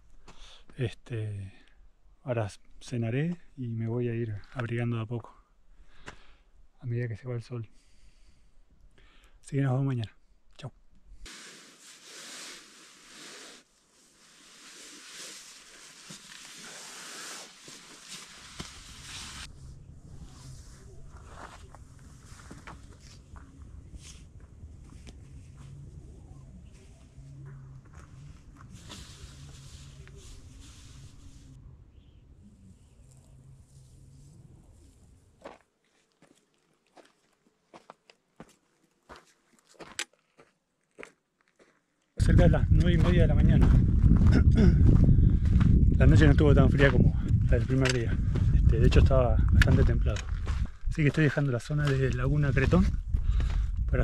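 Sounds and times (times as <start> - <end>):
rustling of camping gear: 11.2 - 31.6, 32.4 - 42.2
steady low rumble: 18.6 - 35.4, 42.2 - 54.0
footsteps on gravel: 35.4 - 54.0.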